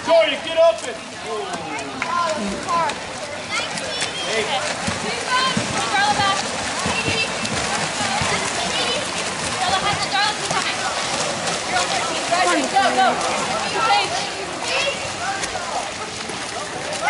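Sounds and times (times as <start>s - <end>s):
water splashing: 0.0s - 17.0s.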